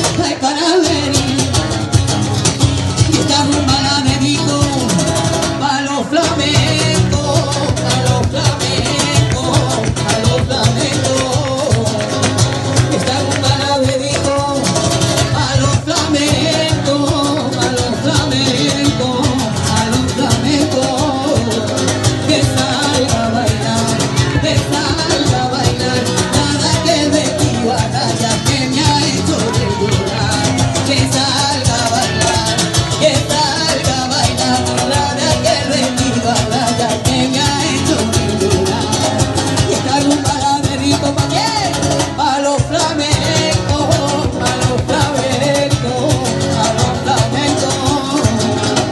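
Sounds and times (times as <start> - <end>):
woman singing into microphone: 0.0 - 1.5, 3.1 - 12.3, 12.9 - 48.9
strummed acoustic guitar: 0.0 - 48.9.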